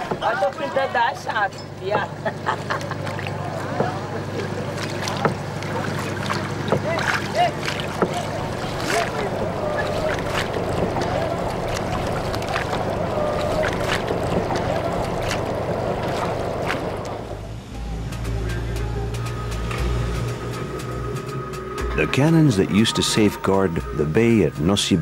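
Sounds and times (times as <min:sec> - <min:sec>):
distant voices calling: 0:00.0 - 0:25.0
water lapping against hulls: 0:00.0 - 0:25.0
low steady rumble: 0:01.7 - 0:25.0.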